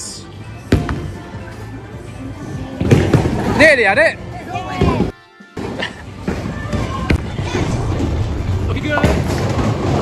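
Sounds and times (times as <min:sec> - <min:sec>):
bowling balls rolling: 0:06.2 - 0:10.0.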